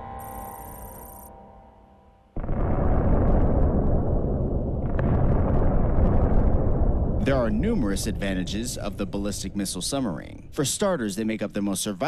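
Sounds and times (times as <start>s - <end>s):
explosion rumbling blast: 2.4s - 11.0s.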